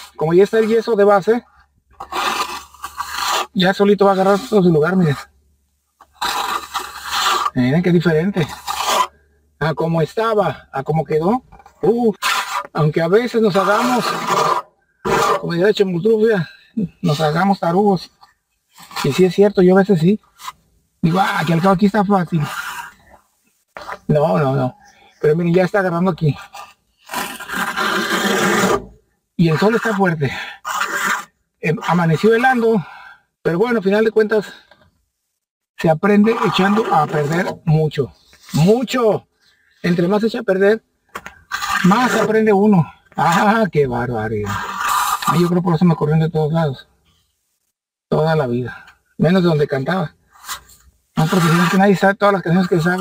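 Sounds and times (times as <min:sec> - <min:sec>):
trowel scraping on wall: 0:02.0 - 0:05.3, 0:06.0 - 0:09.2, 0:11.2 - 0:15.7, 0:18.2 - 0:19.4, 0:20.4 - 0:23.0, 0:26.4 - 0:32.4, 0:36.1 - 0:37.7, 0:41.2 - 0:42.6, 0:44.4 - 0:45.6, 0:50.4 - 0:53.0.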